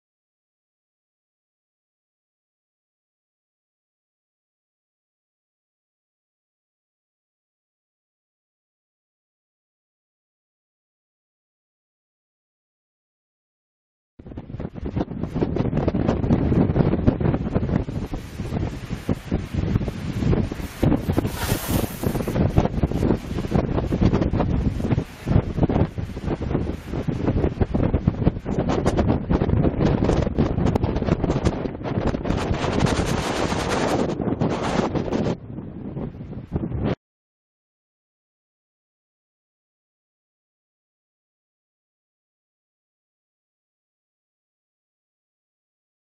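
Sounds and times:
wind buffeting microphone: 0:14.2 - 0:37.0.

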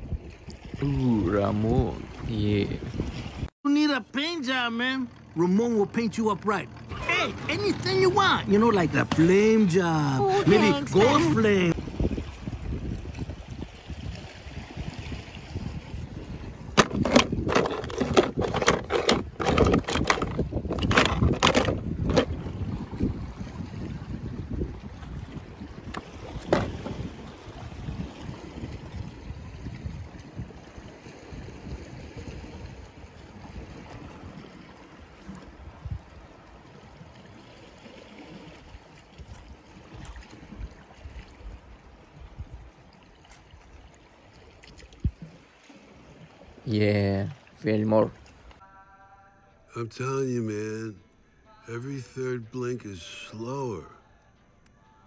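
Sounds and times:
wind on microphone: 0:00.0 - 0:03.5, 0:10.2 - 0:37.1, 0:38.4 - 0:43.9, 0:44.7 - 0:45.4.

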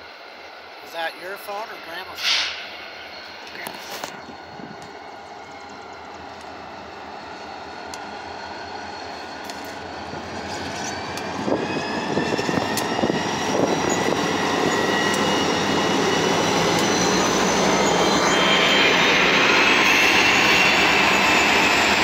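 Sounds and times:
diesel locomotives passing: 0:00.0 - 0:22.0
rising whine: 0:00.0 - 0:22.0.

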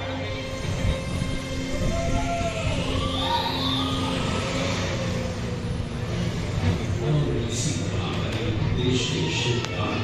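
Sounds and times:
steady low rumble: 0:00.0 - 0:08.9
sweeping siren-like tones: 0:00.4 - 0:06.3.

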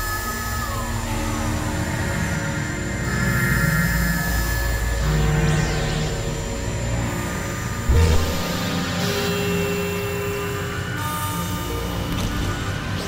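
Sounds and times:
synthesizer drones: 0:00.0 - 0:13.0.

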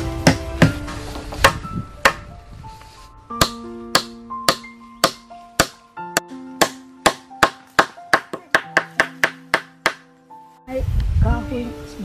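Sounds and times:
hammer driving nails into wood: 0:06.6 - 0:10.0.

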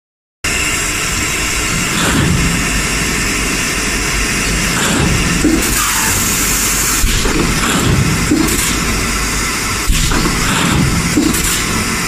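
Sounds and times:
bottle blowing machine running: 0:00.5 - 0:12.0.

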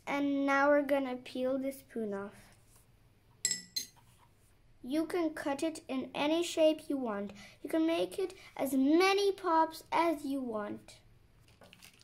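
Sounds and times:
teaspoon clinking on saucer: 0:03.5 - 0:04.0.

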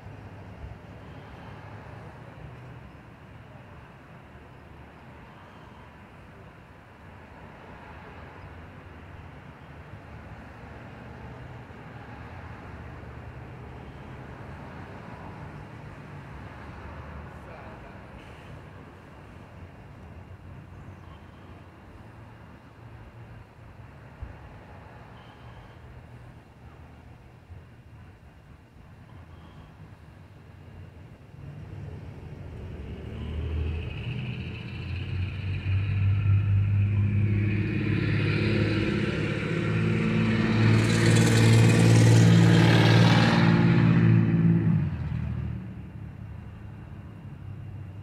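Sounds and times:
vehicle engine passing: 0:31.4 - 0:48.0.

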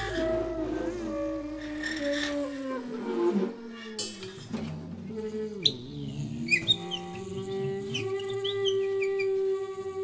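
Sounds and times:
percussion: 0:03.7 - 0:08.7.

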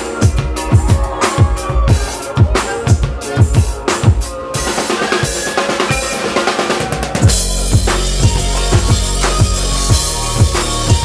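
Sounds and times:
electronic backing track: 0:00.0 - 0:11.0
live drum kit played hard: 0:00.0 - 0:11.0
deep bass and kick drum: 0:07.2 - 0:11.0.

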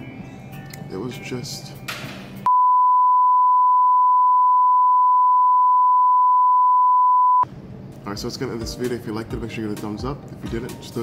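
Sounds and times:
censor bleep: 0:02.5 - 0:07.4.

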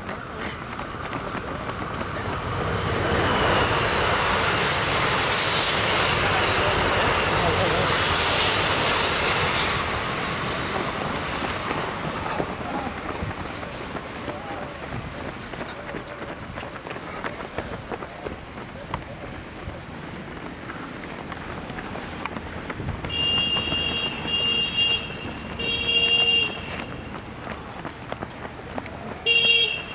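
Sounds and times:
train passing: 0:00.0 - 0:29.9.

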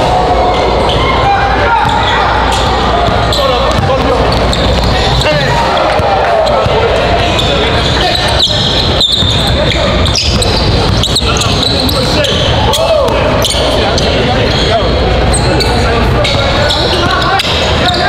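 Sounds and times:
sneakers squeaking: 0:00.0 - 0:18.0
voices chattering: 0:00.0 - 0:18.0
ball bouncing on hardwood court: 0:02.6 - 0:06.8, 0:09.1 - 0:12.2.

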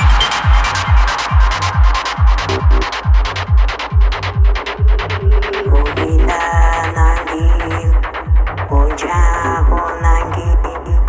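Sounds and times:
synth line with bending pitch: 0:00.0 - 0:02.9
deep kick drum: 0:00.0 - 0:11.0
rolling bassline: 0:00.0 - 0:11.0.

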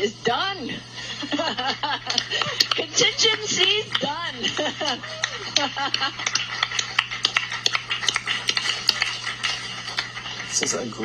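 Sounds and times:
steady low hum: 0:00.0 - 0:11.0
person laughing: 0:01.0 - 0:06.4.

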